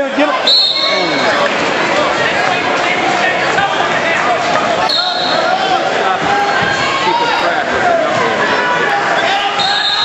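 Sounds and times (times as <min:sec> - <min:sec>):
spectators yelling: 0:00.0 - 0:10.0
referee's whistle blast: 0:00.4 - 0:01.0, 0:09.2 - 0:10.0.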